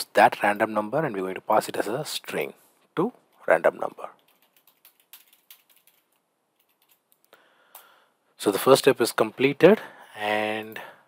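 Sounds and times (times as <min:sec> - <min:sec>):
typing on computer keyboard: 0:04.2 - 0:07.3.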